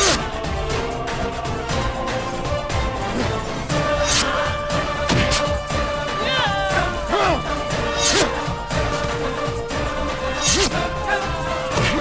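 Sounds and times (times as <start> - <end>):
background music: 0.0 - 12.0
punch hit sound effects: 5.0 - 5.6.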